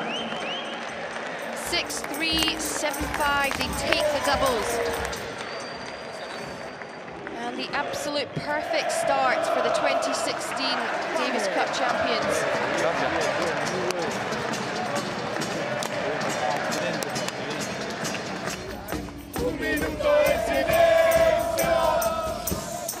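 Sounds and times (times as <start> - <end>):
crowd singing and chanting: 0.0 - 6.0, 7.6 - 23.0
scattered clapping: 0.0 - 8.1, 9.4 - 23.0.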